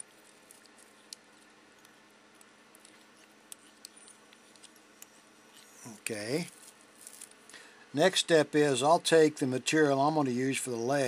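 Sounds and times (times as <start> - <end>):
faint steady hum: 0.0 - 11.0
soft handling clicks: 0.4 - 5.8.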